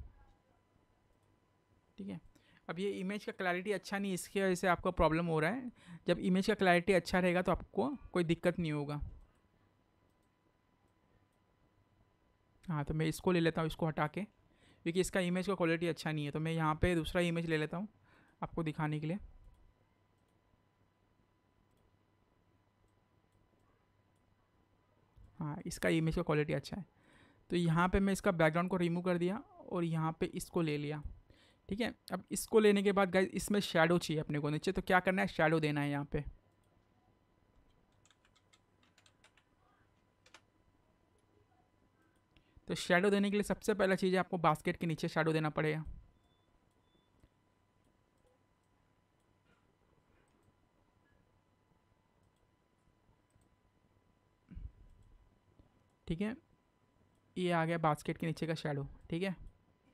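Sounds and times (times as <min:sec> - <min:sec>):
low room hiss: 0:00.0 - 0:59.9
computer mouse clicks: 0:21.6 - 0:22.0, 0:37.6 - 0:40.5, 0:50.2 - 0:50.6, 0:52.2 - 0:53.5.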